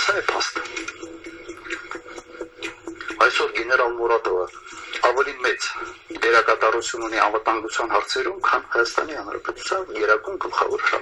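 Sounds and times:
man talking through a speaker: 0.0s - 0.7s, 3.2s - 11.0s.

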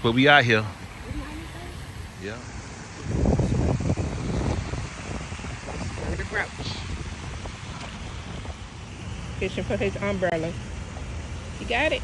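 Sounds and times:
wind noise on microphone: 2.7s - 9.8s.

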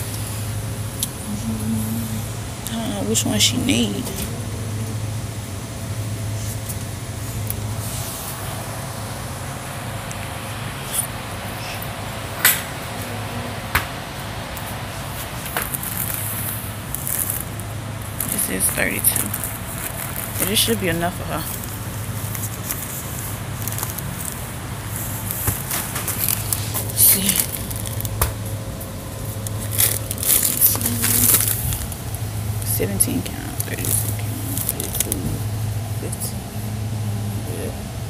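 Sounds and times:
low shop hum: 0.0s - 38.0s
high rustle: 15.0s - 20.8s
plastic packaging crinkling: 15.1s - 32.7s, 33.3s - 35.4s.

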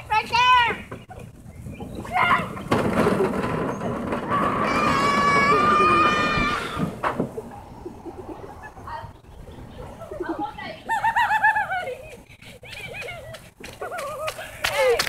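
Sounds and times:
distant children yelling and laughing: 0.0s - 15.0s.

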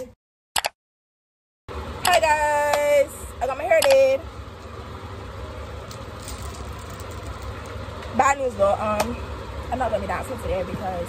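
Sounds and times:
low background rumble: 1.7s - 11.0s.

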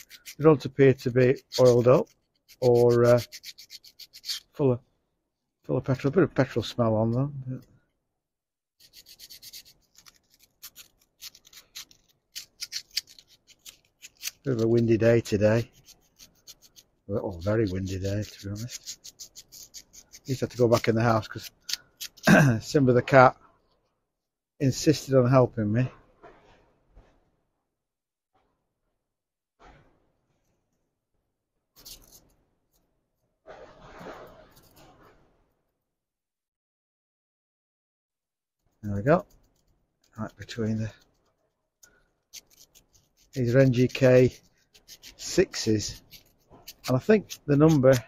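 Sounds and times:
sandpaper rubbing on spark plug: 0.0s - 4.6s, 8.8s - 22.4s, 42.2s - 48.0s.

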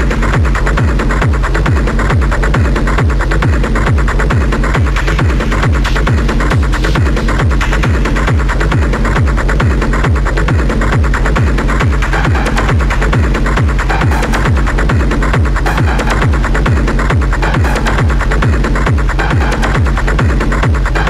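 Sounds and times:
deep bass hits: 0.0s - 21.0s.

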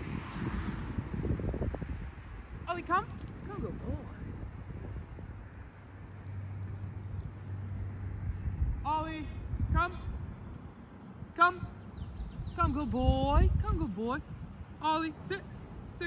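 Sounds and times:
outdoor background noise: 0.0s - 16.0s
man calling a dog: 2.6s - 4.3s, 8.8s - 10.2s, 11.4s - 16.0s.

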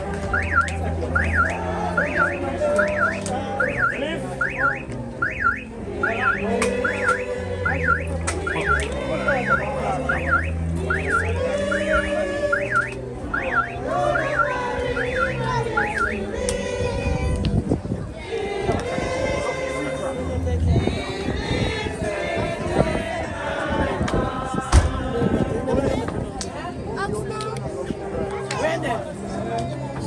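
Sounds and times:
background music with bass line: 0.0s - 30.0s
car alarm whooping: 0.3s - 16.3s.

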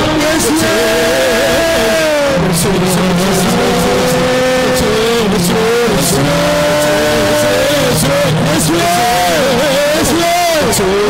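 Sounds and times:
man singing devotional melody: 0.0s - 11.0s
sustained accompanying chords: 0.0s - 11.0s.

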